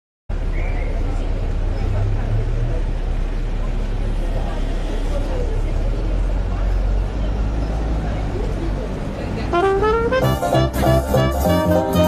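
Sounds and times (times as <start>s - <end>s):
faint voices of passers-by: 0.3s - 12.0s
low traffic rumble: 0.3s - 12.0s.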